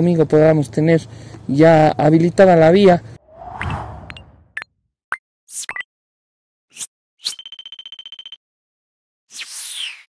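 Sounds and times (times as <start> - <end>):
quick swooshes: 3.3 - 4.4.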